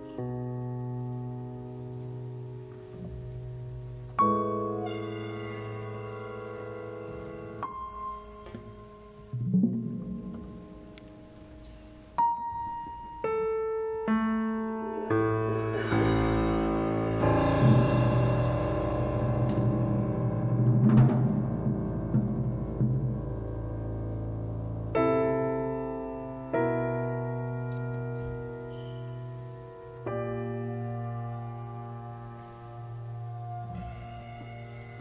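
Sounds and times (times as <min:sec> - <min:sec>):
grand piano chord ringing: 0:00.0 - 0:13.5, 0:14.3 - 0:35.0.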